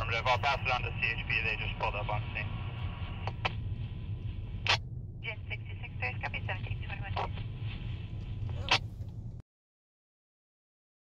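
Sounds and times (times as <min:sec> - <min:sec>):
two-way radio voices: 0:00.0 - 0:03.5, 0:04.7 - 0:07.4, 0:08.5 - 0:08.9
low vehicle rumble: 0:02.5 - 0:09.4.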